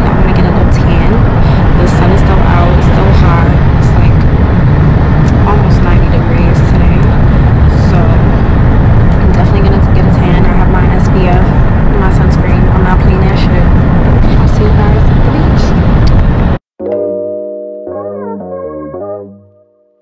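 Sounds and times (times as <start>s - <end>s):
woman talking: 0.0s - 4.3s, 5.3s - 8.4s, 9.1s - 15.8s
road and wind noise in car: 0.0s - 16.6s.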